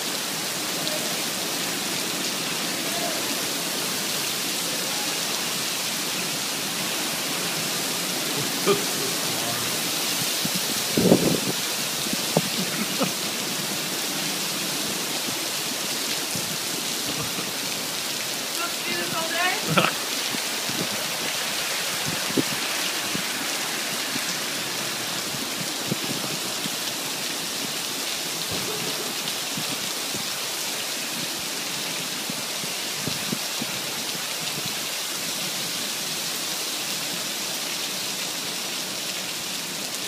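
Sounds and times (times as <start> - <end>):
heavy rain on asphalt: 0.0 - 40.0
sharp rain taps: 6.8 - 15.4, 16.0 - 30.3.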